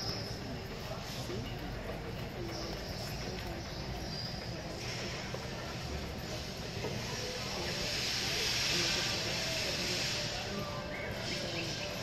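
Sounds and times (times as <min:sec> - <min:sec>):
faint background voices: 0:00.0 - 0:12.0
steady hiss: 0:06.2 - 0:12.0.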